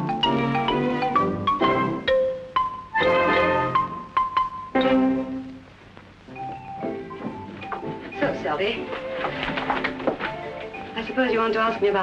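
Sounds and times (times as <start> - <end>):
xylophone notes: 0.0 - 5.4.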